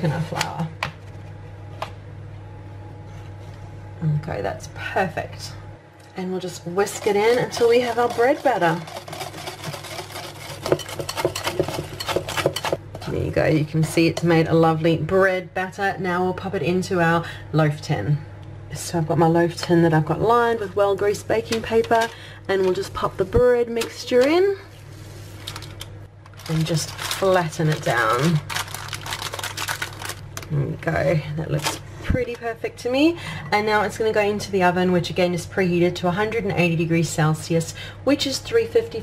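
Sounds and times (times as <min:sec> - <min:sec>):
whisk beating batter in glass bowl: 0:06.8 - 0:12.8
baking paper crinkling: 0:06.9 - 0:12.7, 0:24.9 - 0:30.6.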